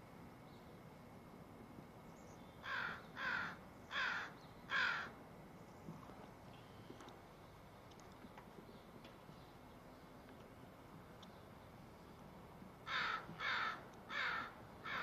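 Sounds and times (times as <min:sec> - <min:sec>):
crow cawing: 0:02.6 - 0:05.2, 0:12.8 - 0:15.0.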